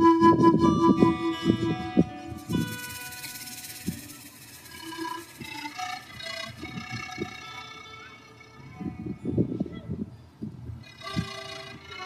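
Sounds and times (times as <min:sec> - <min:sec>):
pan flute held notes: 0:00.0 - 0:10.2, 0:10.8 - 0:12.0.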